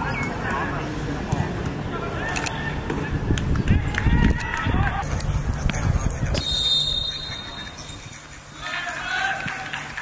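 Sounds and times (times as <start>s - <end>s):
players calling out: 6.3s - 10.0s.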